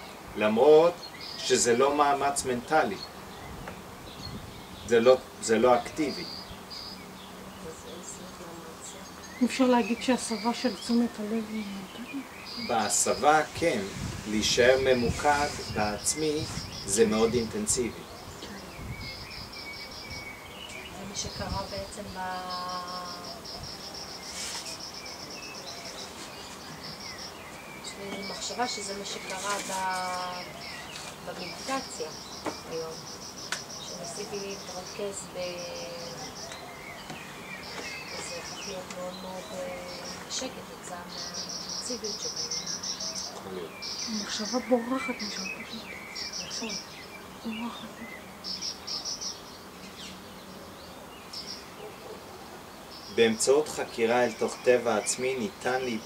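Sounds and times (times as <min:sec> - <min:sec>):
faint outdoor background noise: 0:00.0 - 0:56.0
insect chirping: 0:00.0 - 0:56.0
brief hiss: 0:24.3 - 0:24.8.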